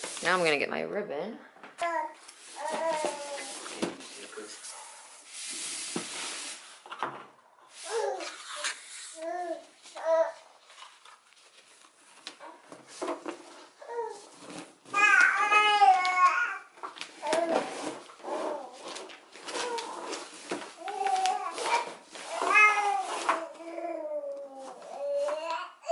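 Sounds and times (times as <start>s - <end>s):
gift-wrap paper rustling: 2.2s - 7.0s, 7.8s - 25.5s.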